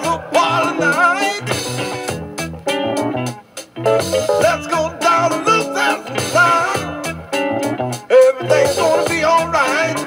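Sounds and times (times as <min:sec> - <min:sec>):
jazz funk band playing: 0:00.0 - 0:10.0.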